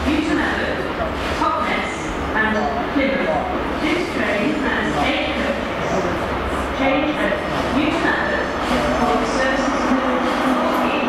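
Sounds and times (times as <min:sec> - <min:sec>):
train rumbling: 0:00.0 - 0:11.0.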